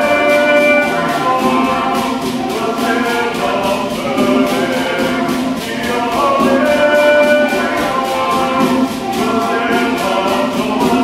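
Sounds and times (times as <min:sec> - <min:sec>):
choir singing in harmony: 0:00.0 - 0:11.0
hand drum beat: 0:00.0 - 0:11.0.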